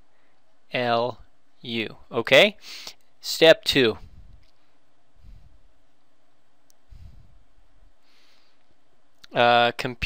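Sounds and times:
steady faint hiss: 0.0 - 10.0
brief breathy hiss: 2.6 - 3.0.

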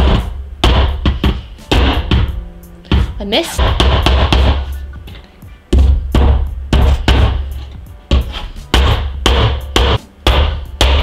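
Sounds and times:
hammer striking nails into wood: 3.6 - 4.6, 8.1 - 11.0.

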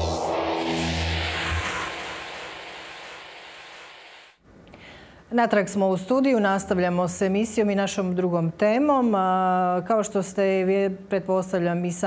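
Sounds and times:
deep bass note: 0.0 - 4.1
whooshing sweep: 0.0 - 4.4.

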